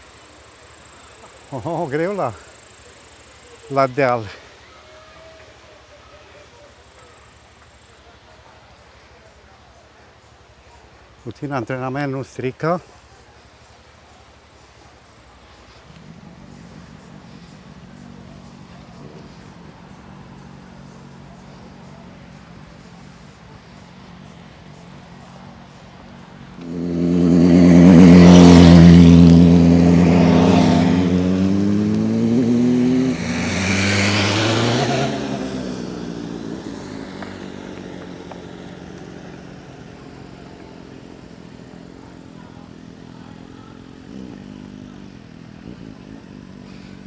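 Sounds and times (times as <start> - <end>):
vehicle engine passing by: 12.8 - 47.0.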